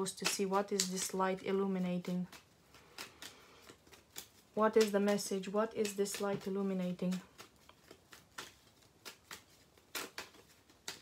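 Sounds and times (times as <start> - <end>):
playing cards shuffling: 0.0 - 11.0.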